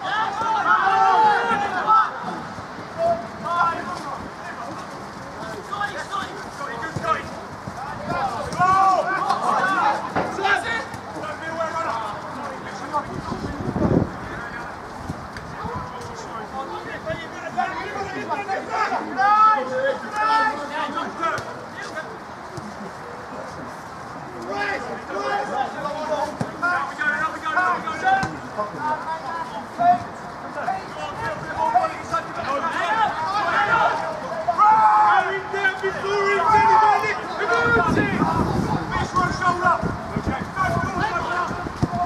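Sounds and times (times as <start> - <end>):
people shouting across a pitch: 0.0 - 13.5, 15.5 - 22.1, 24.4 - 42.0
babble of distant voices: 0.0 - 42.0.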